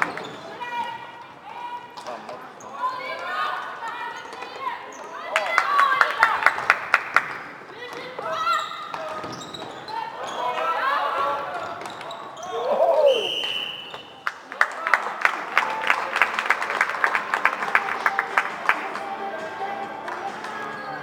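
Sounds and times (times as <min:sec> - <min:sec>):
sharp claps: 0:05.4 - 0:07.5, 0:13.3 - 0:19.1
referee's whistle blast: 0:13.1 - 0:14.2.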